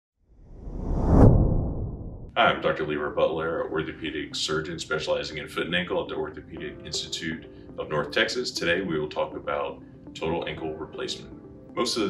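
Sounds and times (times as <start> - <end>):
whoosh sound effect: 0.5 - 2.3.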